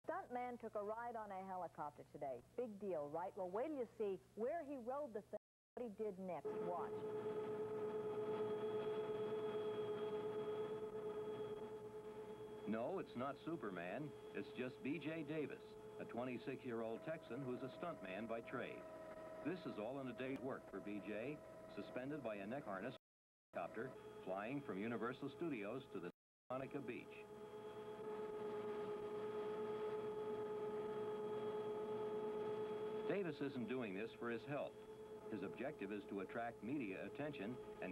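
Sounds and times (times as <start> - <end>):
helicopter whine: 6.3 - 23.0, 23.6 - 37.9
steady pitched hum: 6.3 - 23.0, 23.6 - 37.9.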